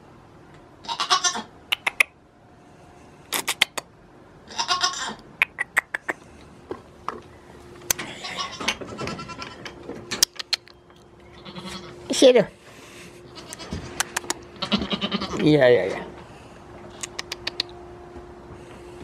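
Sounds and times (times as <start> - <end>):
goat bleating: 0.8 - 1.5, 4.5 - 5.2, 8.0 - 9.8, 11.3 - 12.0, 13.3 - 15.5.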